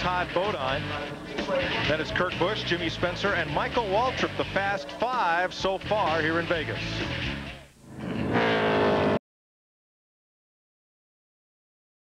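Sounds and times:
race car engine at speed: 6.1s - 9.2s.

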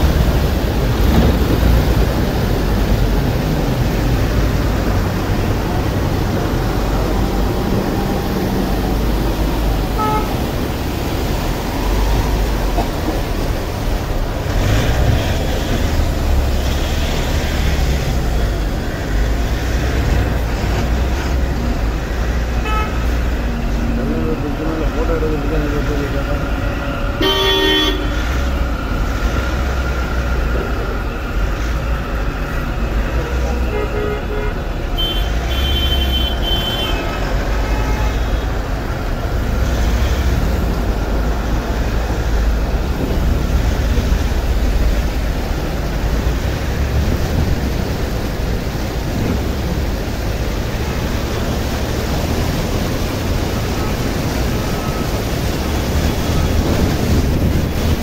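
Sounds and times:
vehicle engines rumbling: 0.0s - 58.0s
car horns honking: 9.9s - 10.6s, 22.6s - 23.1s, 27.2s - 28.3s, 33.6s - 38.5s.

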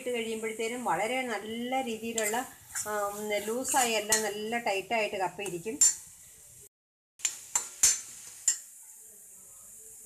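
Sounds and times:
faint steady hiss: 0.0s - 10.0s
metal spoon clinking and scraping pan: 2.0s - 4.6s, 5.4s - 6.1s, 7.2s - 8.7s.

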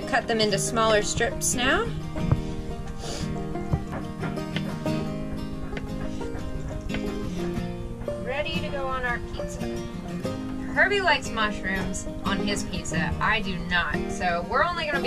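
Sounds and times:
instrumental background music: 0.0s - 15.0s
knife tapping on wooden board: 5.7s - 7.1s.

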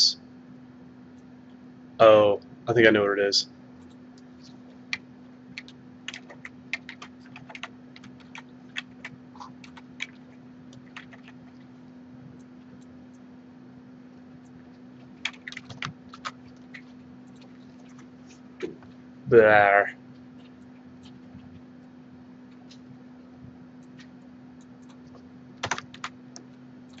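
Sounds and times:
steady low hum: 0.0s - 27.0s
keyboard typing: 3.8s - 11.7s, 14.4s - 19.0s, 23.8s - 27.0s.

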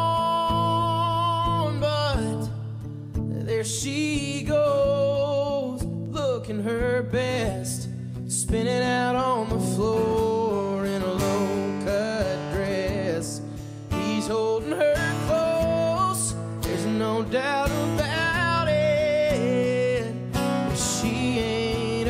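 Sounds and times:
country song with guitars: 0.0s - 22.0s
man singing: 0.0s - 22.0s.

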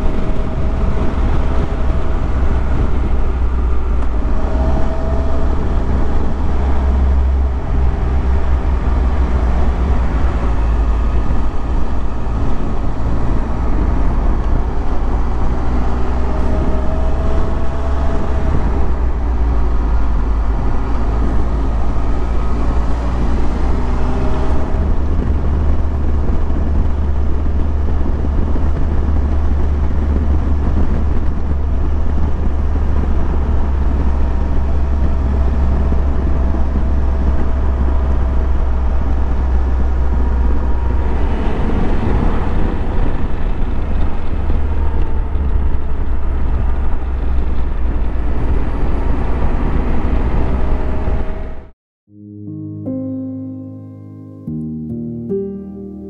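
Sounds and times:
wind rumble on microphone: 0.0s - 51.8s.

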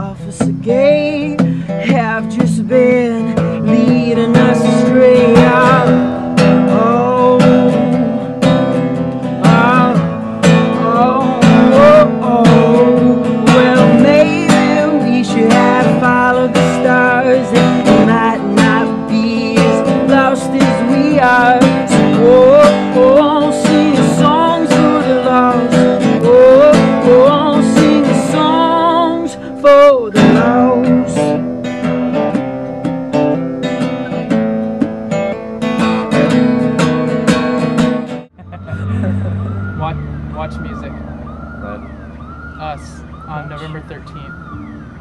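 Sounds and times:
person singing: 0.0s - 8.6s, 9.4s - 31.4s
acoustic guitar: 0.0s - 44.0s
siren wailing: 38.5s - 45.0s.

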